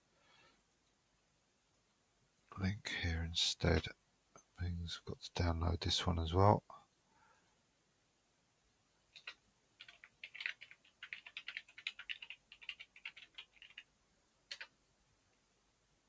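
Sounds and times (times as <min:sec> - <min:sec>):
typing on computer keyboard: 0:09.2 - 0:13.9, 0:14.5 - 0:14.7.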